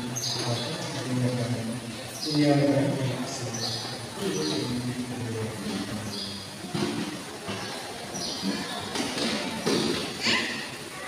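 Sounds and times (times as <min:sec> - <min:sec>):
man reading aloud: 0:00.0 - 0:06.5.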